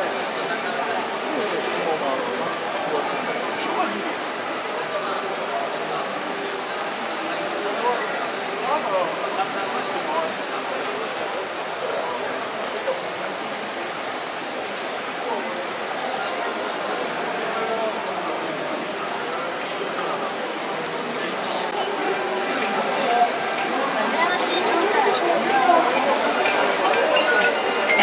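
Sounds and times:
crowd chatter echoing in hall: 0.0 - 28.0.

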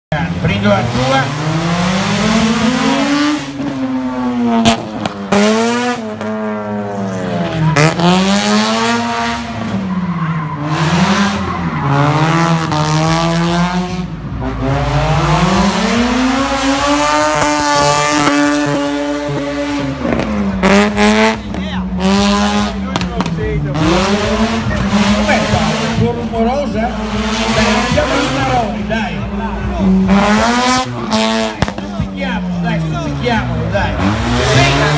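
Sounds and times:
car engine revving: 0.1 - 34.9.

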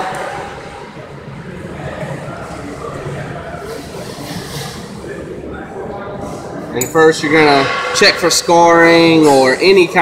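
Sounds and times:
workshop low hum: 0.0 - 10.0.

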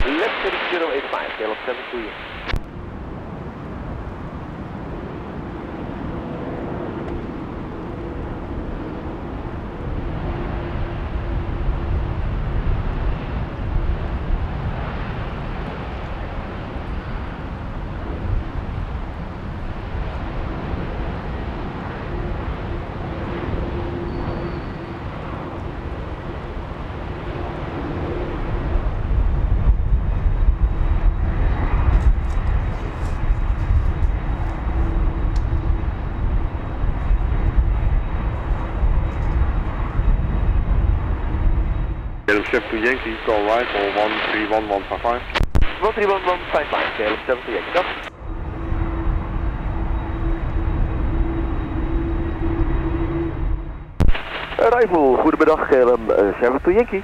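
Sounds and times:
jet engines at low thrust: 0.0 - 57.0.

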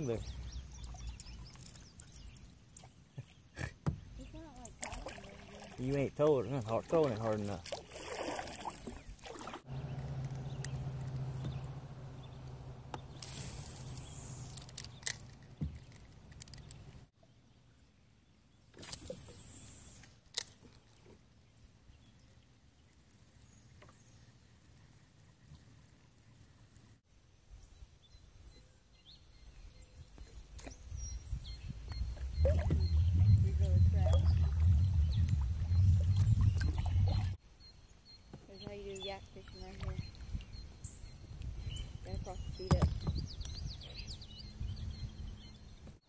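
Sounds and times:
high bird chirps: 9.7 - 15.8, 30.6 - 37.4
fishing line whizzing off spool: 13.1 - 15.2, 18.8 - 20.2
reel bail snapping shut: 14.4 - 16.8.

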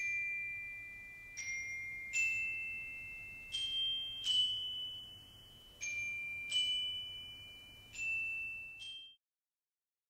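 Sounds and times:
metal bar mallet notes ringing: 0.0 - 9.2.

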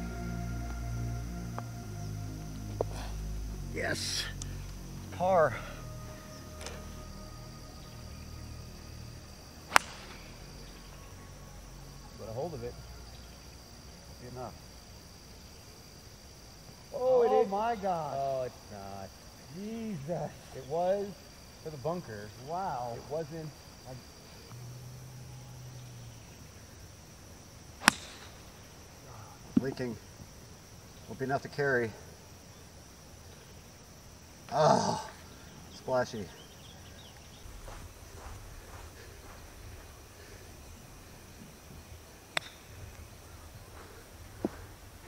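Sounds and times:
insects buzzing: 0.0 - 45.0
golf club striking ball: 9.7 - 10.4, 27.8 - 28.4, 42.3 - 42.8.

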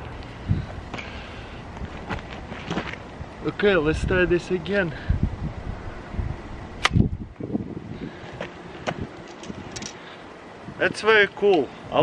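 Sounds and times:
slingshot snap: 6.8 - 7.0.

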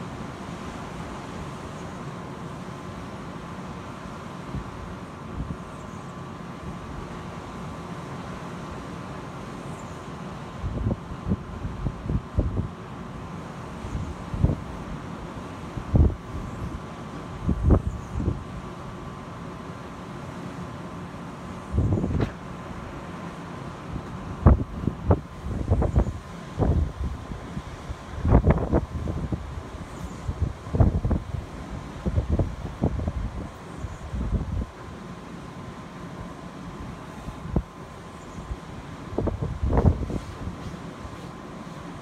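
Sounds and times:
wind buffeting microphone: 15.8 - 16.8, 17.4 - 18.5, 21.7 - 22.4, 24.4 - 34.7, 39.1 - 40.6.

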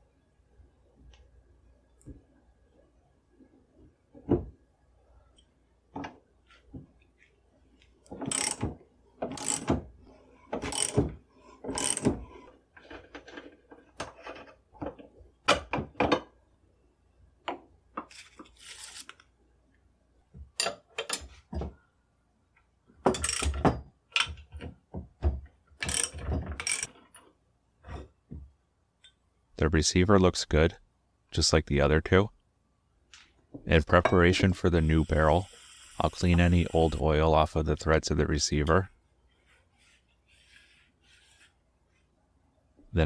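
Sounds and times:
ratchet wrench clicking: 8.3 - 8.6, 9.4 - 9.7, 10.7 - 11.0, 11.8 - 12.1, 25.8 - 26.9.

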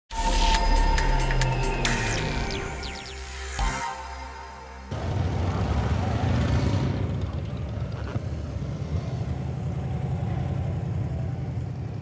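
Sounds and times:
motorcycles riding past: 4.9 - 12.0.

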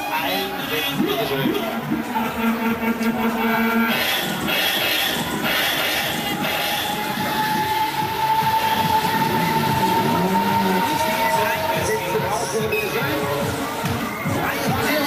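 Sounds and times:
fairground noise: 0.0 - 15.0
fairground ride rumbling: 0.0 - 15.0
steady high tone: 0.0 - 15.0.

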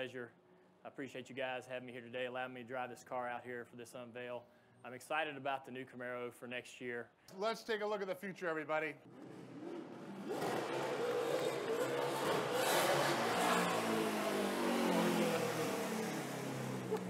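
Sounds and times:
race car engine: 9.0 - 17.0.

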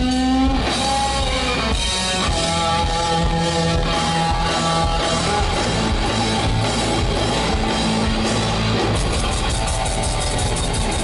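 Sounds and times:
bass guitar: 0.0 - 11.0
drum kit: 0.0 - 11.0
electric guitar: 0.0 - 11.0.

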